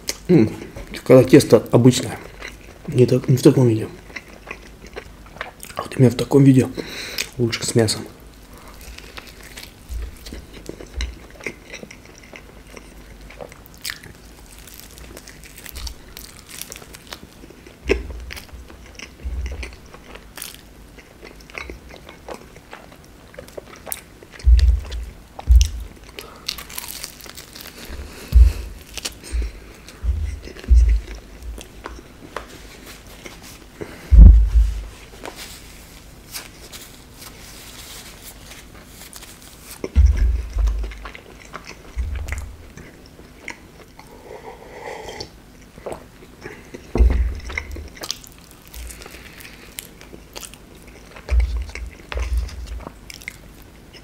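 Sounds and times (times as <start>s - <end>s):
crunching fried dough: 0.0s - 44.0s, 45.8s - 54.0s
wet chewing: 8.5s - 35.4s, 38.2s - 44.2s, 45.0s - 54.0s.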